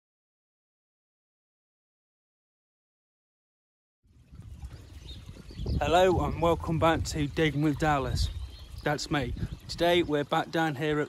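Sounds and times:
small fountain trickling and splashing: 4.1s - 11.0s.

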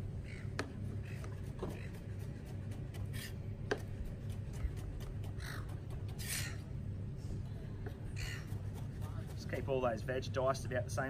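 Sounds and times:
harsh bird calls: 0.1s - 2.1s, 5.2s - 6.7s.

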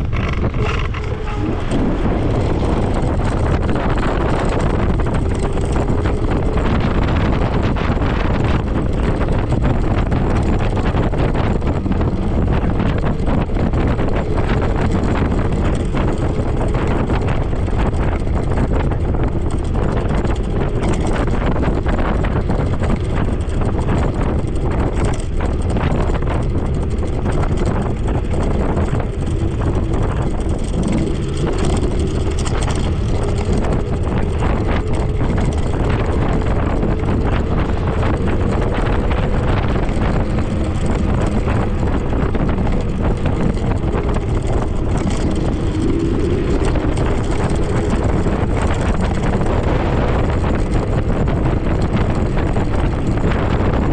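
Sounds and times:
road noise from scooter: 0.0s - 53.9s
wind rush: 0.0s - 53.9s.

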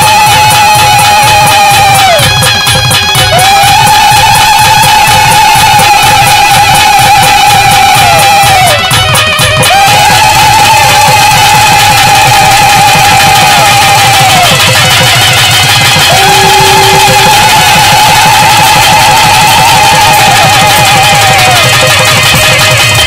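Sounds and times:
fast dense percussion: 0.0s - 23.0s
reed wind instrument long notes: 0.0s - 23.0s.

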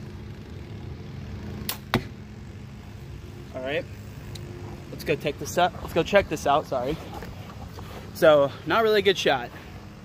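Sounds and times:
lawnmower droning: 0.0s - 10.0s
crossbow cracks: 1.7s - 2.1s.

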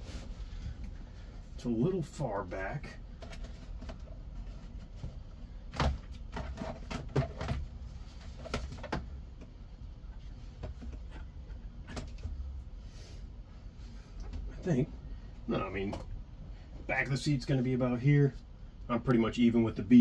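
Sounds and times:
low steady rumble: 0.0s - 20.0s.

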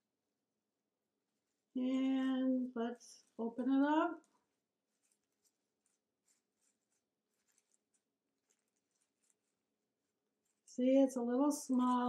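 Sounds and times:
paper crinkling: 1.2s - 12.0s.

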